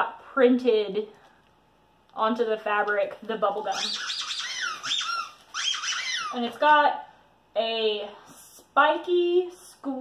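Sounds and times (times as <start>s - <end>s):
dog toy squeaker squeaking: 3.7s - 6.5s.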